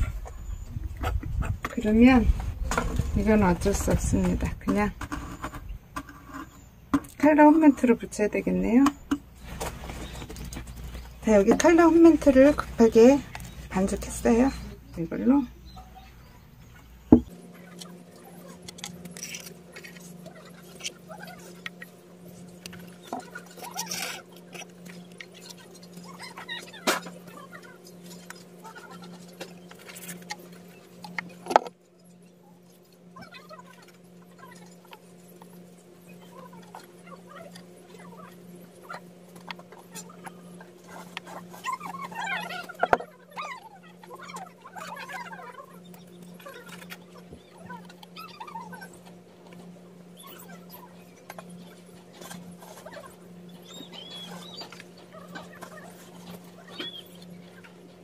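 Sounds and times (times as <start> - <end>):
steady low hum: 0.0 - 58.0
stone scraping and rubbing: 4.7 - 7.2.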